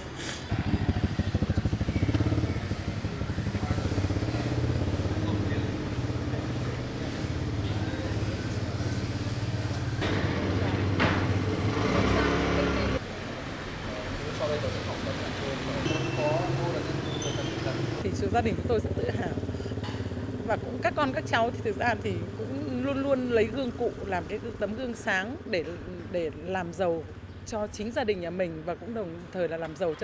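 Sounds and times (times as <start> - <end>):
motorbike engines passing: 0.0 - 30.0.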